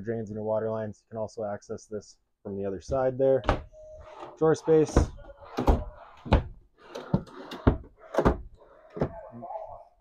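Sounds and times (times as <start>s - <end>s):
drawers opening and shutting: 3.4s - 9.3s.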